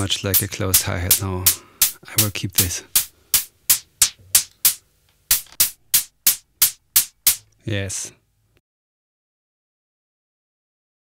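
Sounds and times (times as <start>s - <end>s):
synthesizer hi-hat hits: 0.0s - 7.4s.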